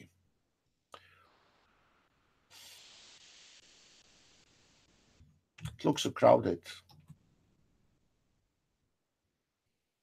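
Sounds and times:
faint steady hiss: 0.0s - 8.5s.

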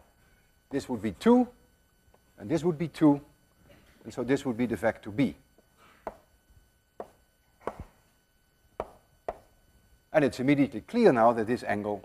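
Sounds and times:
chalk tapping on blackboard: 6.0s - 6.3s, 7.0s - 7.9s, 8.8s - 9.5s.

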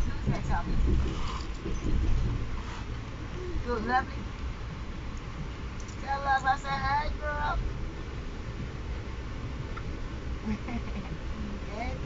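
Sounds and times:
train wheels rumbling on rails: 0.0s - 10.0s.

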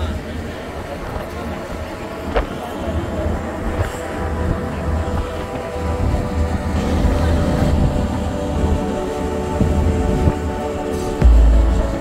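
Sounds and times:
ferry engine drone: 0.0s - 12.0s
wind rumbling on microphone: 0.0s - 12.0s.

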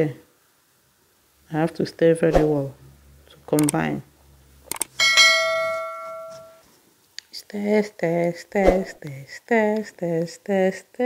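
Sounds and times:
mouse clicks: 3.6s - 3.8s, 4.7s - 4.9s
notification bell chime: 5.0s - 6.6s.

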